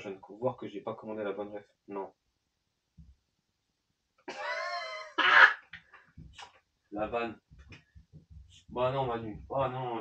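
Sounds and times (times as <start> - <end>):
loud cough: 4.3 - 5.6.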